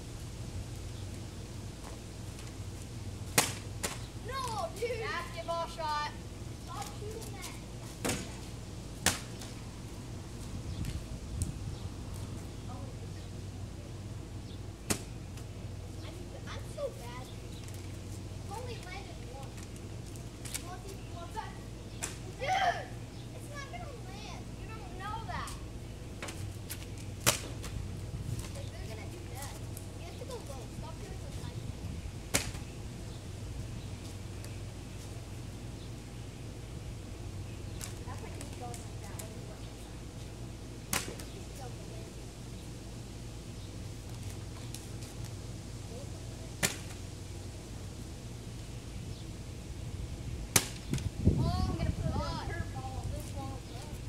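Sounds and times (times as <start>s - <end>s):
steady low hum: 0.0s - 54.0s
loud sharp crack: 3.3s - 4.0s, 9.0s - 9.5s, 14.9s - 15.1s, 22.0s - 22.3s, 27.2s - 27.7s, 32.3s - 32.6s, 40.9s - 41.3s, 46.6s - 47.0s, 50.5s - 51.0s
faint distant voices: 12.0s - 36.0s, 37.2s - 49.5s.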